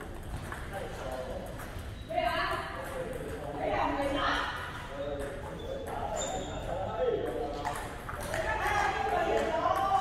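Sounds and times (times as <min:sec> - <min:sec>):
table tennis balls clicking: 0:00.0 - 0:03.8.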